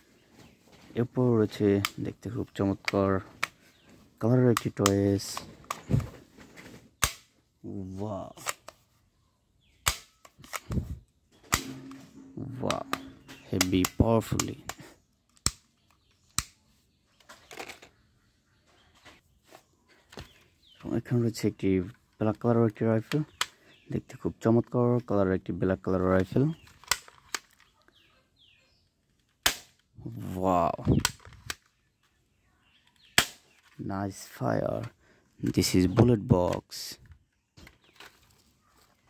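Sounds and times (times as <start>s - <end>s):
plastic clicks: 1.6s - 3.9s, 4.5s - 6.1s, 8.3s - 8.8s, 9.8s - 16.6s, 17.2s - 18.0s, 23.0s - 23.8s, 26.0s - 28.0s, 30.8s - 33.8s
faint bird chirps: 7.6s - 21.3s, 26.3s - 29.2s, 30.0s - 36.3s
toy shotgun snap: 11.5s - 12.0s.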